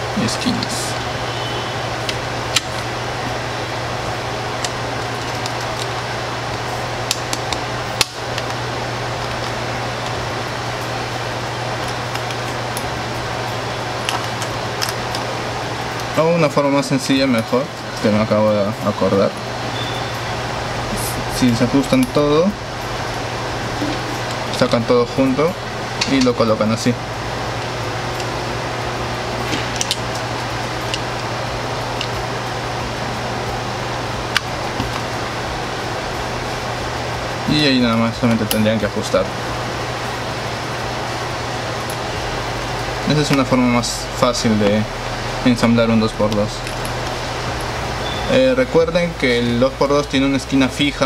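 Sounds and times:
background hum and hiss: 0.0s - 51.0s.

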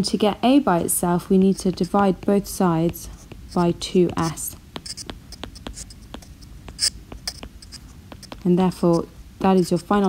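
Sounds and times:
stylus scratch: 0.7s - 10.0s
stylus tapping on glass screen: 1.7s - 8.4s.

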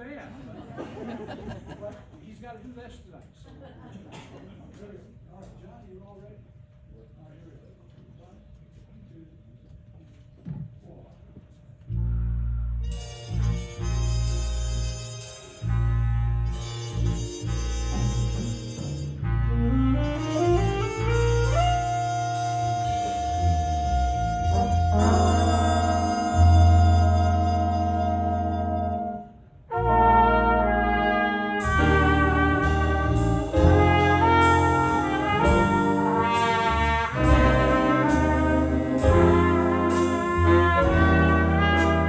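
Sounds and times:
big band playing: 11.9s - 42.0s.

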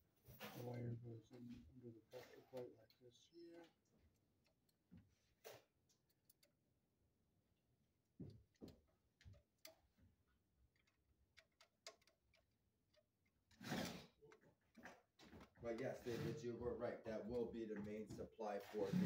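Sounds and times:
screwdriver clicks and knocks: 8.2s - 10.0s, 10.7s - 13.3s.

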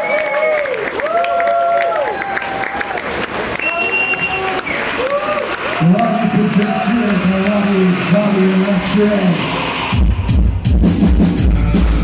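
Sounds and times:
crowd applauding and cheering: 0.0s - 10.7s
shrill whistle: 3.6s - 4.9s.

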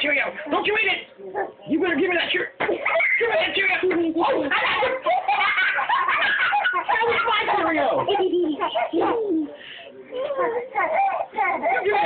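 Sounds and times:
baby babbling and cooing: 10.1s - 12.0s.

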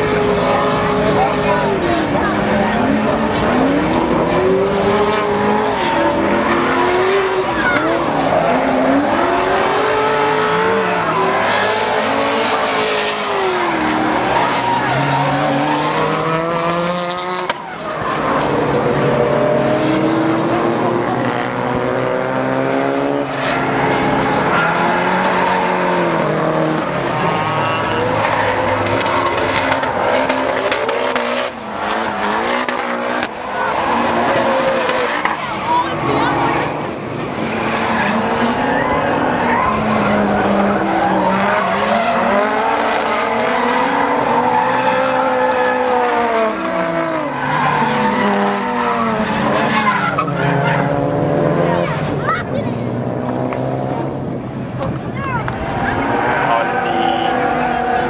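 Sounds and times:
car engines revving: 0.0s - 58.0s
tyre squeal and skidding: 5.2s - 16.4s, 17.5s - 21.4s, 23.0s - 36.6s, 37.8s - 51.1s, 55.6s - 58.0s.

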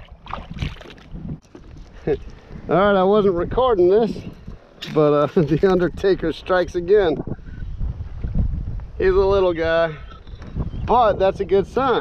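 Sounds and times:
water splashing: 0.0s - 1.9s
wind on microphone: 0.0s - 12.0s
kayak handling noise: 0.1s - 2.6s.

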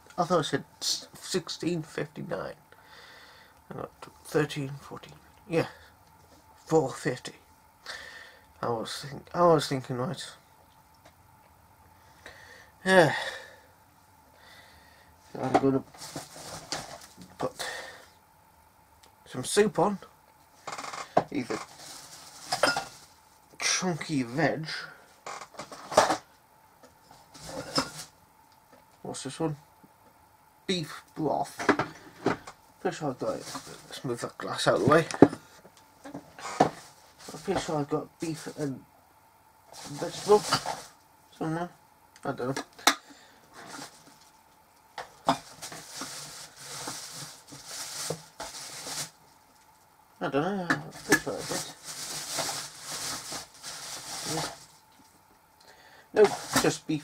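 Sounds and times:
rummaging household items: 15.3s - 17.5s, 20.6s - 23.2s, 27.2s - 28.1s, 31.5s - 38.6s, 39.7s - 41.0s, 43.5s - 44.4s, 45.0s - 49.2s, 50.7s - 54.9s, 56.2s - 57.0s
rustling scrape: 15.9s - 17.2s, 21.5s - 23.2s, 33.3s - 34.0s, 39.7s - 41.0s, 43.6s - 44.3s, 45.4s - 49.2s, 50.9s - 54.8s, 56.2s - 56.7s.

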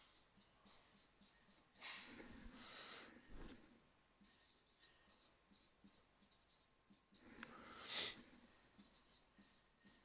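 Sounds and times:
marker scratching on whiteboard: 0.0s - 10.0s.

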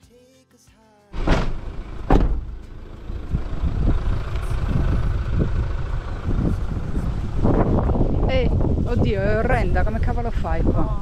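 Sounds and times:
sharp thump: 1.2s - 2.8s
van engine and tyres rumbling: 1.2s - 11.0s
vehicle jolting on rough road: 1.2s - 11.0s.

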